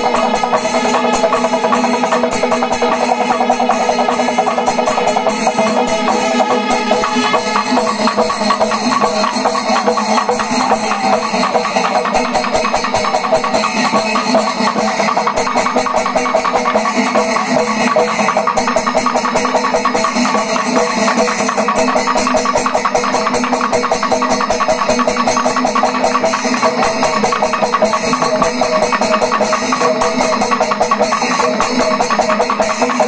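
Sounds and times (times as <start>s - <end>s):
cymbals ringing: 0.0s - 33.0s
fast drum strokes: 0.0s - 33.0s.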